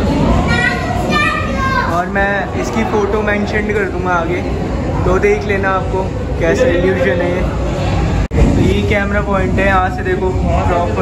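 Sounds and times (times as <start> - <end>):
low background noise: 0.0 - 11.0
child talking: 0.4 - 2.1.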